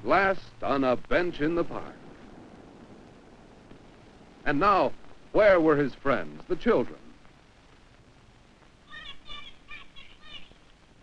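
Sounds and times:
film hiss: 0.0s - 11.0s.

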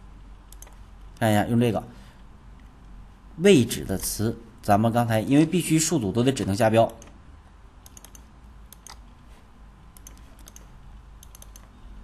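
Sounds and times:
low steady hiss: 0.0s - 12.0s
computer mouse clicks: 0.3s - 1.2s, 6.8s - 7.2s, 7.8s - 9.2s, 9.9s - 11.8s.

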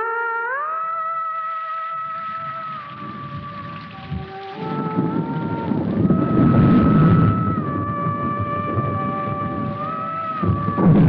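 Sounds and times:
slow orchestral score melody: 0.0s - 11.0s
rain: 1.5s - 11.0s
rumbling thunder: 2.0s - 11.0s.

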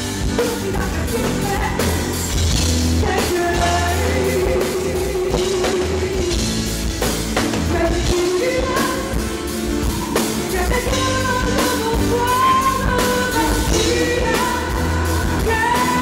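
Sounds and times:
live pop-rock band: 0.0s - 16.0s.

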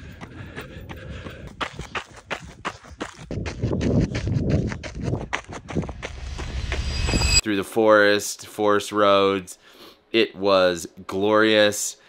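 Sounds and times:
running footsteps on gravel: 0.0s - 6.8s
wind rumbling on microphone: 0.4s - 7.4s.

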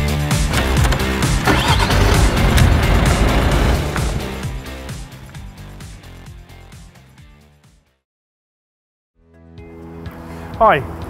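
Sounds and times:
background music with steady beat: 0.0s - 8.0s, 9.3s - 11.0s
car engine starting and running: 0.3s - 5.2s.

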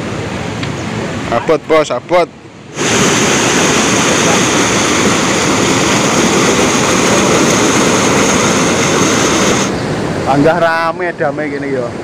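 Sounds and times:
water pouring through dam gates: 2.7s - 10.4s.

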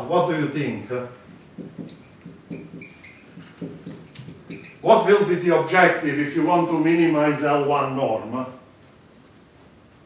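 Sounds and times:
man speaking: 0.0s - 1.2s, 4.8s - 8.6s
marker squeaking on whiteboard: 1.1s - 5.0s.

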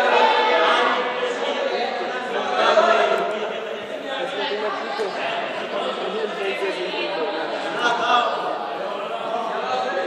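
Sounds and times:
group chatter in sports hall: 0.0s - 10.0s.

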